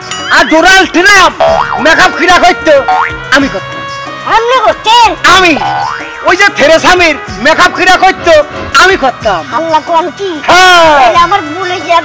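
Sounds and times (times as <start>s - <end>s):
background music: 0.0s - 12.0s
cartoon boing sound effects: 1.4s - 1.8s, 3.0s - 3.2s, 5.6s - 6.0s.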